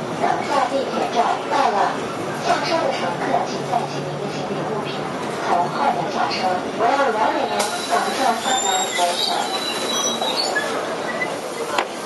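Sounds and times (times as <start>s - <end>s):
bus running noise: 0.0s - 12.0s
high-pitched brake squeal: 7.6s - 11.4s.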